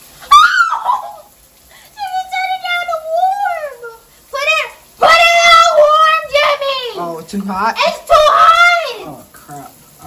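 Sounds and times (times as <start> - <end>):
woman singing in a shower: 0.0 - 7.3.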